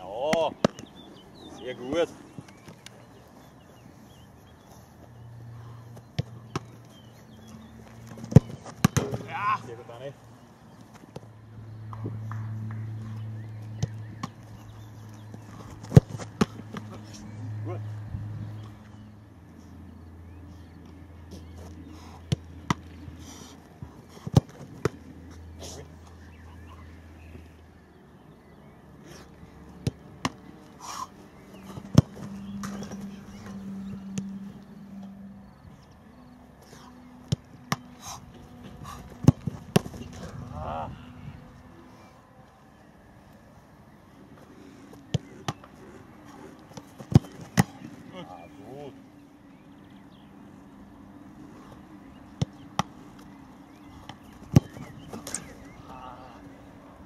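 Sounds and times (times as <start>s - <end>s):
steady low hum: 0.0s - 57.0s
football thuds: 6.0s - 7.0s, 7.6s - 9.7s, 15.2s - 16.9s, 23.9s - 25.1s, 31.5s - 34.4s, 37.2s - 40.4s, 46.7s - 48.0s, 54.0s - 55.6s
football being kicked: 6.1s - 6.8s, 8.2s - 9.4s, 31.6s - 33.0s, 39.2s - 40.3s, 46.7s - 47.8s, 54.0s - 55.3s.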